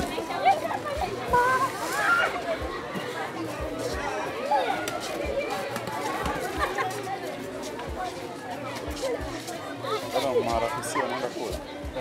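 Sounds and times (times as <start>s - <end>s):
murmur of overlapping voices: 0.0s - 12.0s.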